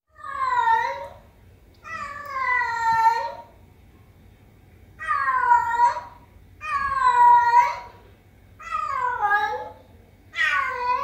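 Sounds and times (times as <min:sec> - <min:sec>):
cat meowing: 0:01.8 - 0:03.5, 0:05.0 - 0:07.9, 0:08.6 - 0:11.0.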